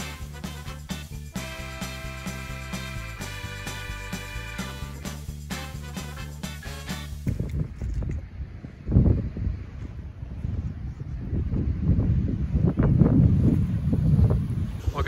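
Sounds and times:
upbeat background music: 0.0 - 7.2
wind buffeting microphone: 7.1 - 15.0.

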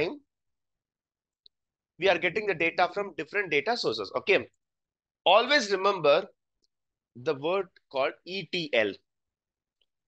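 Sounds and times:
man speaking: 0.0 - 0.3, 2.0 - 4.6, 5.3 - 6.4, 7.2 - 9.1.

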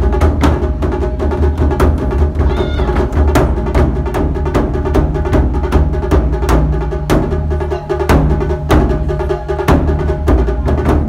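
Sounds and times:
deep drum rumble: 0.0 - 11.0.

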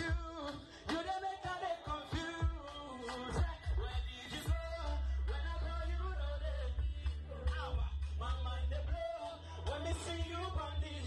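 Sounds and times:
deep bass beat: 0.0 - 11.0
music with singing: 0.0 - 11.0.

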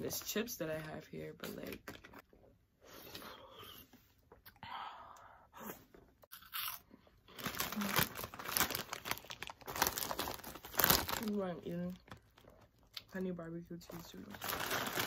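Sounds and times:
plastic bag crinkling: 7.3 - 13.2, 13.9 - 15.0.

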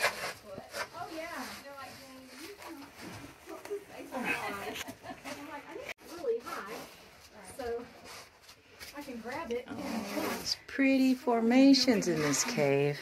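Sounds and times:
clothing rustling against rock: 0.0 - 10.6.

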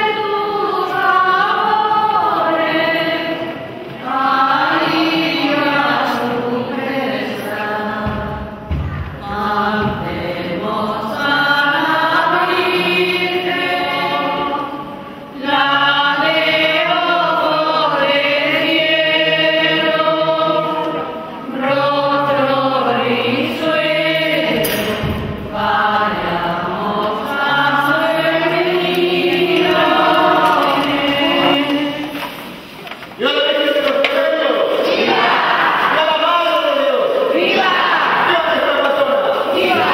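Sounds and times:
group singing slow religious chant: 0.0 - 39.9.

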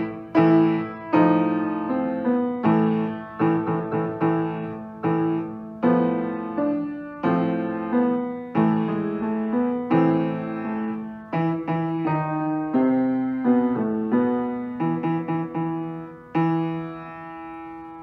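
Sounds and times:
solo piano: 0.0 - 18.0.

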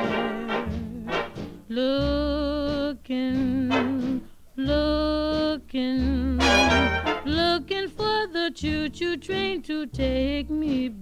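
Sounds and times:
swing big-band long held notes: 0.0 - 7.8.

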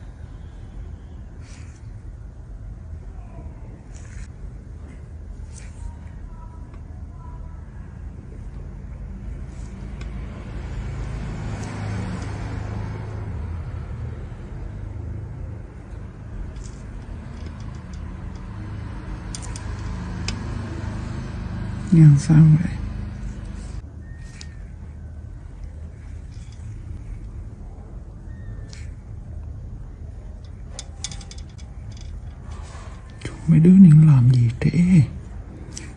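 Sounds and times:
low background rumble: 12.2 - 35.9
faint high squeaks: 28.2 - 29.0.

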